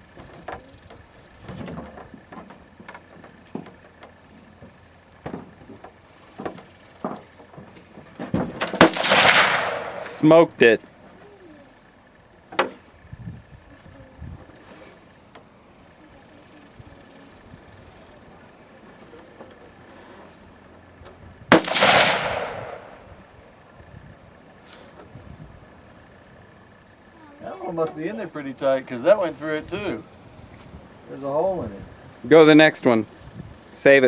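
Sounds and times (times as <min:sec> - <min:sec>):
rifle shot with echo: 0:08.6 - 0:10.4, 0:21.5 - 0:23.1.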